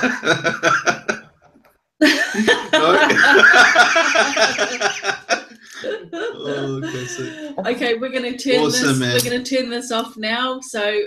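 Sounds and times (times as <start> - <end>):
two people laughing: 0.0 - 1.2, 2.0 - 7.6.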